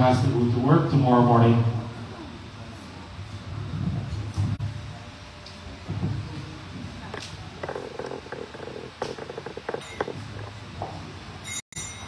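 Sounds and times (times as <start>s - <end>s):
harmonium low fluttering: 7.2s - 10.7s.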